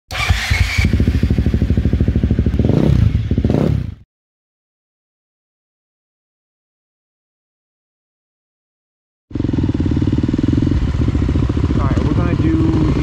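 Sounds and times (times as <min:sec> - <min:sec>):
dirt bike engine running: 0:00.1 - 0:04.0, 0:09.3 - 0:13.0.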